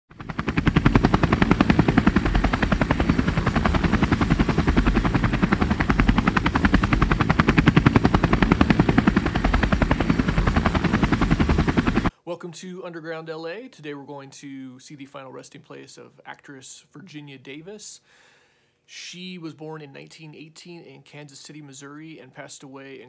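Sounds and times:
fast mechanical chopping pulse: 0.1 - 12.1.

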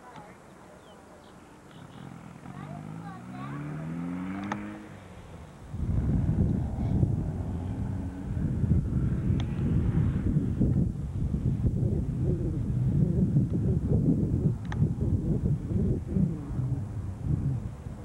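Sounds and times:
vehicle engine speeding up: 1.9 - 18.0
wind buffeting microphone: 2.5 - 18.0.

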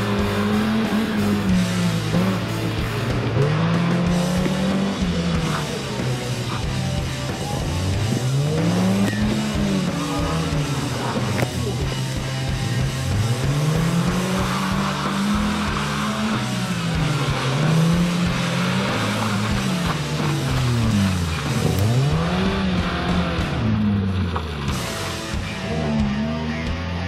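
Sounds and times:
car engine revving: 0.0 - 27.0
music: 0.0 - 27.0.

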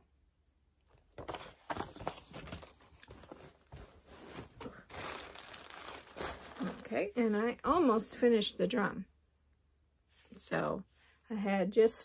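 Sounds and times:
paper and fabric rustling: 1.2 - 8.2.

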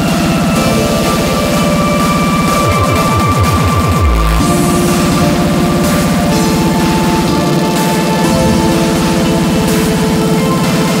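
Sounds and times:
sustained synth notes: 0.0 - 11.0
fast kick drum: 0.1 - 11.0.

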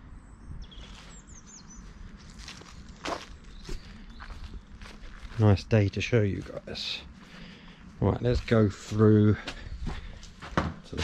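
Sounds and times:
bird chirping: 0.0 - 5.2
footsteps of person walking: 0.8 - 11.0.

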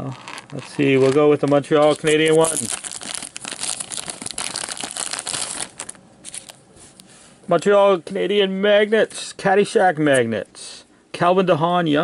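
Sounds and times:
plastic bag crinkling: 0.0 - 6.6.

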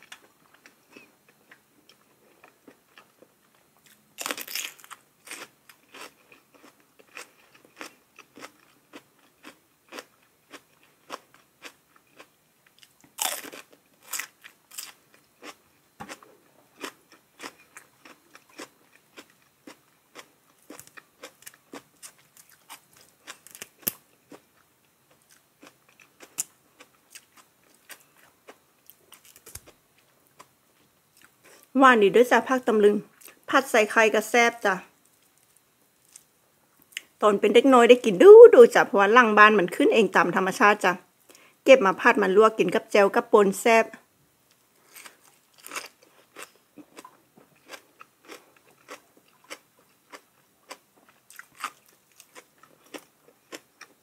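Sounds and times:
crunchy chewing of vegetables: 0.0 - 31.7, 35.0 - 37.2, 44.4 - 54.0
loud crisp bites: 4.2 - 6.1.

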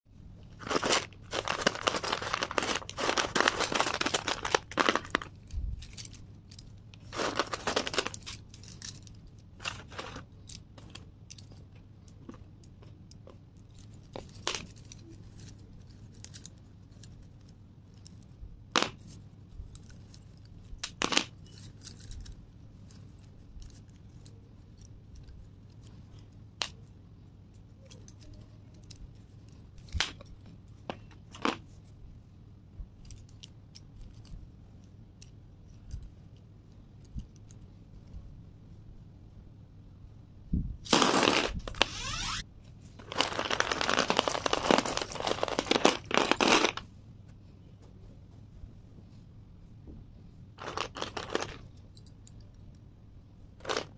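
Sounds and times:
slate pencils clattering: 0.5 - 12.5, 43.0 - 46.9, 50.6 - 52.5, 53.6 - 53.9.

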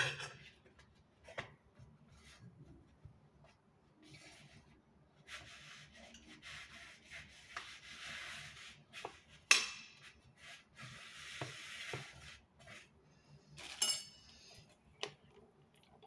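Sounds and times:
utensil scraping a cooking pot: 0.0 - 0.6, 4.0 - 14.9.

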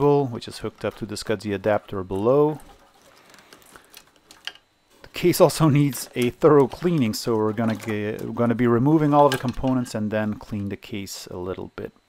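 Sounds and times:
ribbon cable rustling: 5.7 - 9.8.

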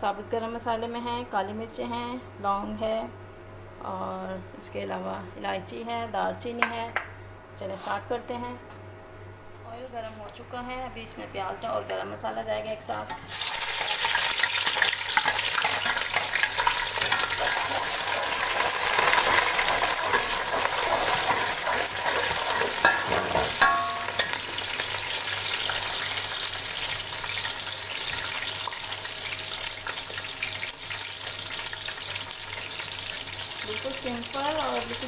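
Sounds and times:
onions sizzling in hot oil: 13.2 - 35.0
metal spoon clinking on pot: 22.8 - 24.4.

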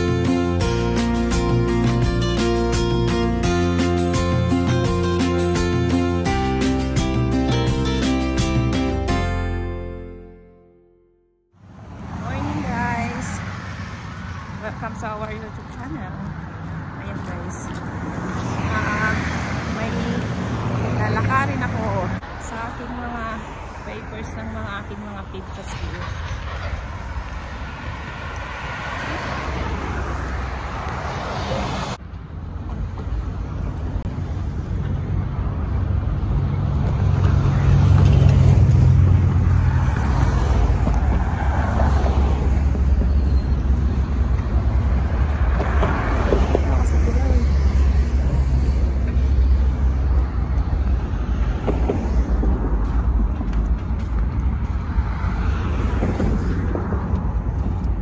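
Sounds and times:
cars driving past: 11.5 - 58.0.

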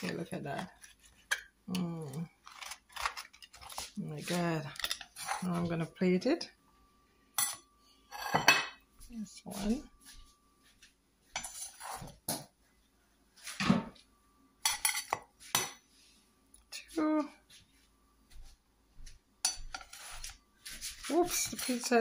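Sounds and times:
utensils clinking on plate: 4.6 - 5.6, 14.6 - 15.8.

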